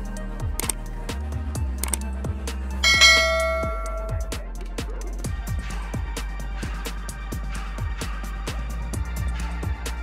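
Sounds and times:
electronic music with kick drum: 2.3s - 6.1s
bright bell chime: 2.8s - 4.4s.

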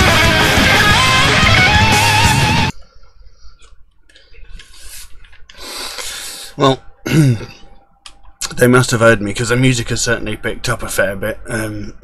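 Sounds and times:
man breathing heavily: 2.8s - 6.6s
man coughing: 7.0s - 7.7s.

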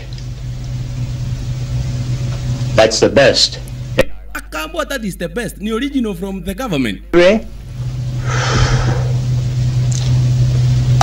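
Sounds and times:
steady low-pitched hum: 0.0s - 11.0s.

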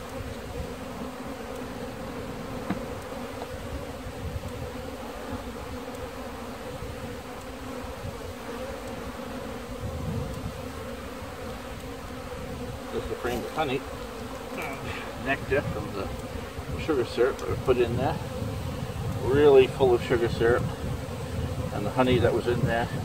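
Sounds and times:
honeybees buzzing: 0.0s - 23.0s.

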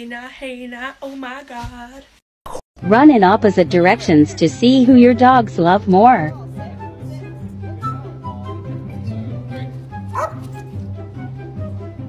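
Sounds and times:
background music: 2.8s - 12.0s
small dog yipping: 10.1s - 10.7s.

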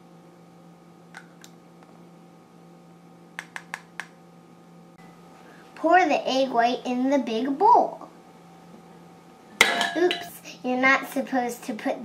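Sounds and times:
faint steady hum: 0.0s - 12.0s
glass bowl clinking on glass: 9.6s - 10.3s.

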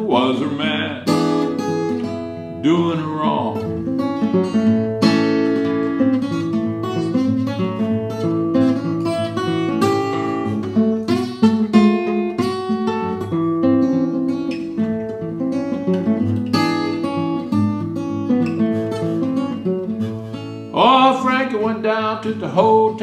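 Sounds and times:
fingerpicked acoustic guitar: 0.0s - 23.0s.

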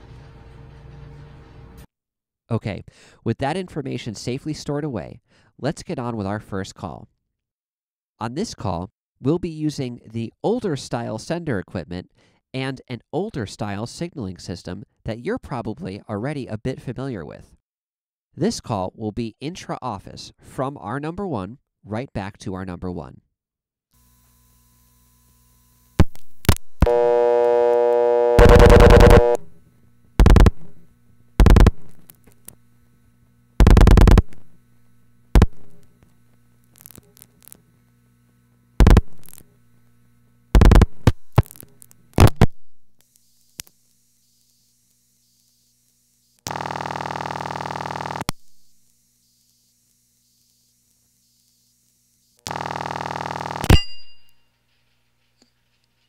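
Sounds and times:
buzzy dial tone: 25.9s - 29.6s, 30.2s - 32.4s, 33.6s - 34.6s, 35.2s - 36.0s, 38.7s - 42.5s, 43.2s - 53.9s
dialing pulse bursts: 26.0s - 29.5s, 30.2s - 30.8s, 31.4s - 32.0s, 33.6s - 34.5s, 35.3s - 35.8s, 38.8s - 39.4s, 40.5s - 42.5s, 46.2s - 48.4s, 49.2s - 53.8s
telephone line click: 26.5s - 29.4s
ringback tone: 26.8s - 29.4s, 52.5s - 54.4s.

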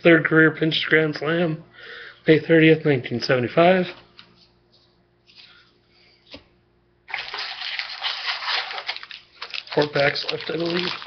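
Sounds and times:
foil wrapper crinkling: 7.1s - 11.0s.

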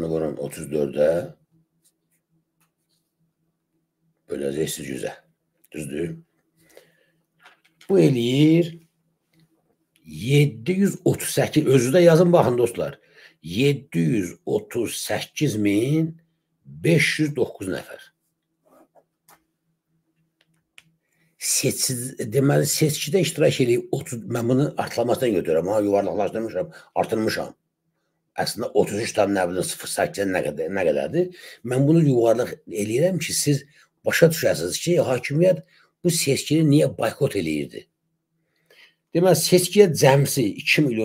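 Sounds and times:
man speaking: 0.0s - 1.4s, 4.3s - 6.3s, 7.8s - 8.9s, 10.0s - 18.1s, 21.4s - 27.6s, 28.4s - 37.9s, 39.1s - 41.0s
faint steady hum: 0.0s - 41.0s.

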